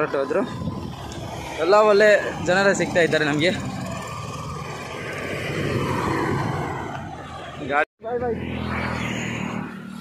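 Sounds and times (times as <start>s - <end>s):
highway traffic passing: 0.0s - 10.0s.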